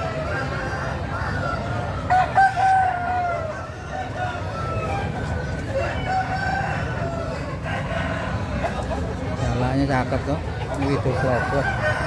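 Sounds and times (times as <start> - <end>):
roosters crowing: 0.0 - 9.4, 10.8 - 12.0
low crowd din: 0.0 - 12.0.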